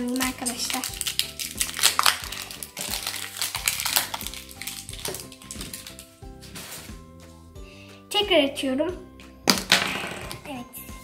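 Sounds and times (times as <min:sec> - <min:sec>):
plastic foil wrapper crinkling: 0:00.0 - 0:06.9
light background music: 0:00.0 - 0:11.0.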